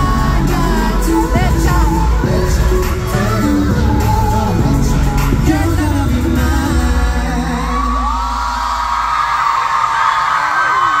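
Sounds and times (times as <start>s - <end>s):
backing track: 0.0s - 8.4s
man singing pop song: 0.0s - 8.9s
fans screaming: 7.4s - 11.0s.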